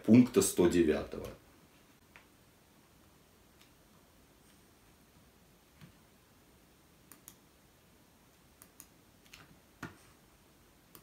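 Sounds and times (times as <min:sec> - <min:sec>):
computer mouse clicks: 0:07.1 - 0:07.4, 0:08.6 - 0:09.5.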